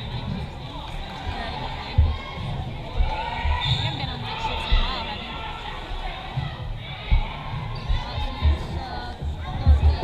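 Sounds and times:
spectators chatting: 0:00.0 - 0:10.0.

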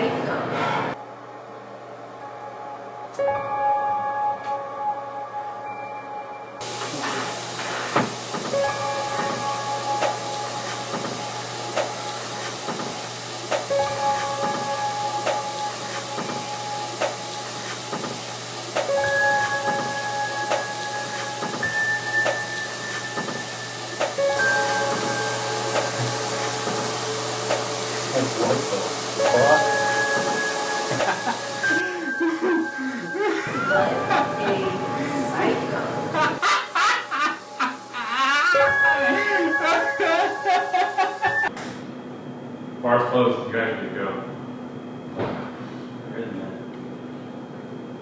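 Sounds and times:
music with sustained tones: 0:00.0 - 0:41.5
tap water running into sink: 0:06.6 - 0:21.6, 0:22.2 - 0:31.8.

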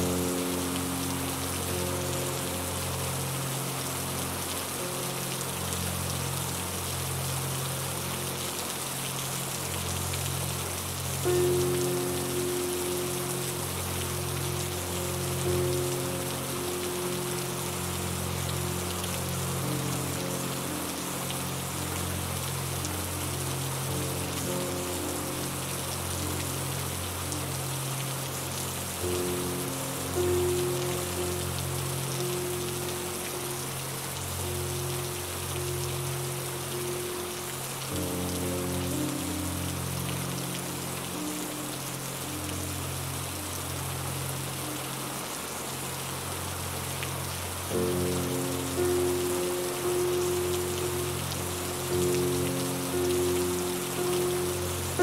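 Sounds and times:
slow calm music: 0:00.0 - 0:55.0
steady rain falling: 0:00.0 - 0:55.0.

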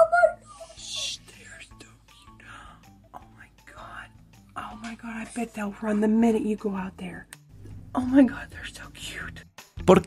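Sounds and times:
high-pitched vocal sound: 0:00.0 - 0:01.3
quiet background music: 0:00.0 - 0:10.0
person whispering: 0:00.6 - 0:04.7.

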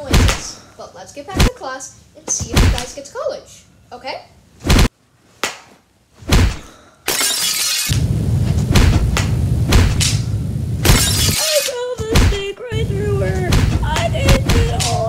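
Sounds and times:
crash with shattering glass: 0:07.1 - 0:08.0, 0:10.8 - 0:11.6.

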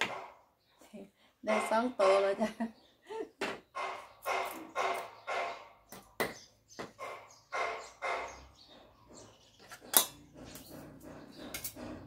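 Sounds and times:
dog barking: 0:00.0 - 0:00.4, 0:03.8 - 0:05.7, 0:07.0 - 0:08.5
knife chopping on wooden block: 0:03.4 - 0:08.2.

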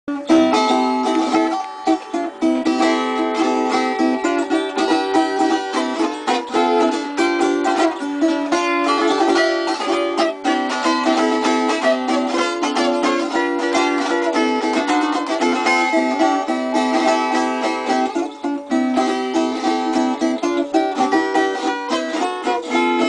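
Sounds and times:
plucked string instrument melody: 0:00.1 - 0:23.0.

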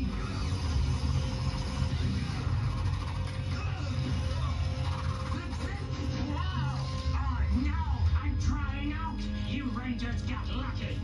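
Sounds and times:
dramatic music: 0:00.0 - 0:11.0.

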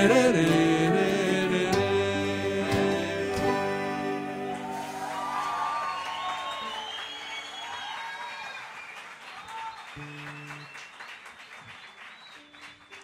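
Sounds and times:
acoustic guitar notes: 0:00.0 - 0:05.3
audience applauding: 0:04.2 - 0:13.0.

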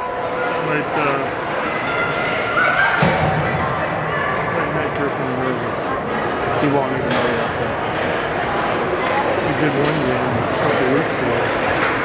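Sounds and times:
voices echoing in arena: 0:00.0 - 0:12.0.

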